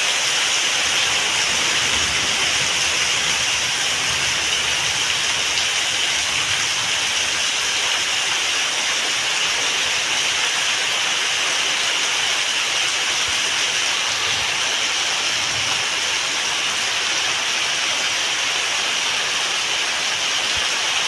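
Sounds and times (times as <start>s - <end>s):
heavy rain: 0.0s - 21.0s
runoff splashing onto concrete: 0.0s - 21.0s.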